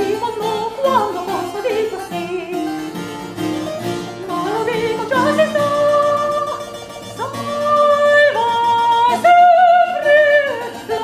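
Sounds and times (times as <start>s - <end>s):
woman singing opera: 0.0s - 2.7s, 4.2s - 11.0s.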